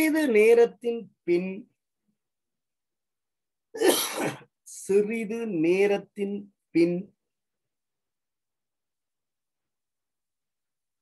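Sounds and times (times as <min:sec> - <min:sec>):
person clearing throat: 0:03.8 - 0:04.5.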